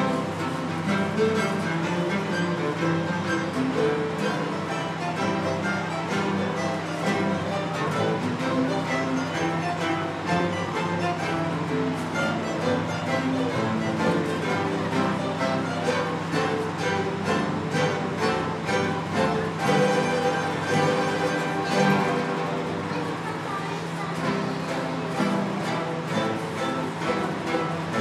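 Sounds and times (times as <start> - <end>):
plucked string ensemble playing: 0.0 - 28.0.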